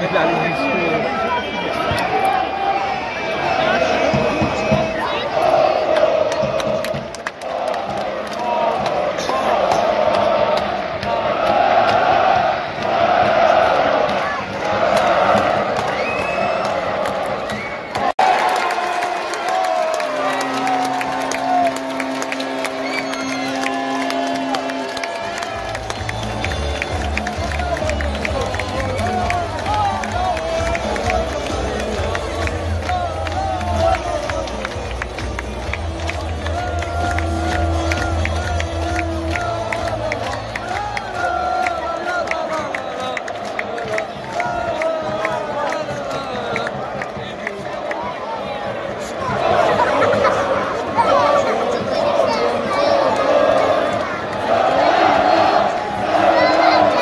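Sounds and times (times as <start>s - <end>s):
music over stadium loudspeakers: 0.0s - 57.0s
stadium crowd chanting: 0.0s - 57.0s.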